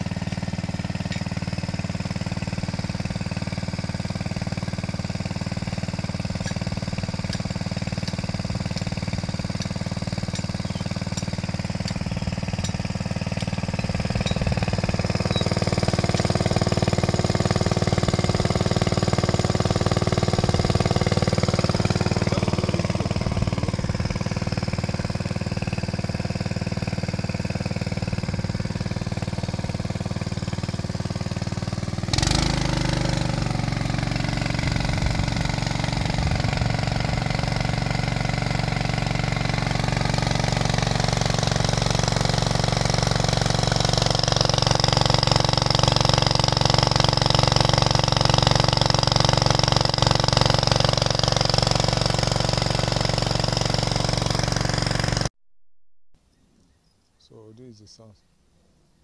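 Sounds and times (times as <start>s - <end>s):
small petrol water pump engine: 0.0s - 55.3s.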